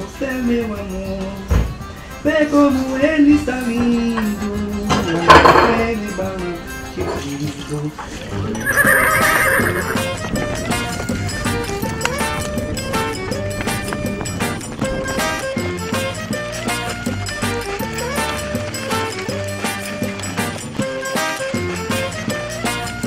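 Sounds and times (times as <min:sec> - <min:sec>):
lively background music: 0:00.0 - 0:23.0
horse whinnying: 0:08.5 - 0:11.0.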